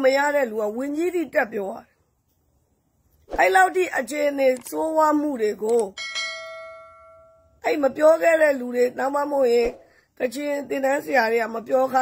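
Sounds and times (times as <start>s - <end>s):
woman speaking: 0.0s - 1.9s, 3.3s - 6.0s, 7.6s - 12.0s
bright bell chime: 6.0s - 7.6s.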